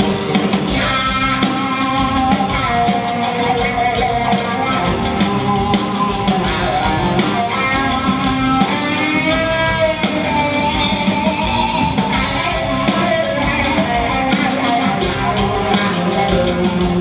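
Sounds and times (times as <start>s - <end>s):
drum kit: 0.0s - 17.0s
guitar strumming: 0.0s - 17.0s.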